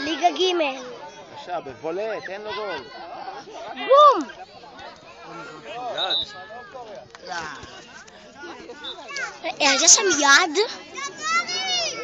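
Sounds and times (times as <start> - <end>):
children shouting: 8.7 - 12.0.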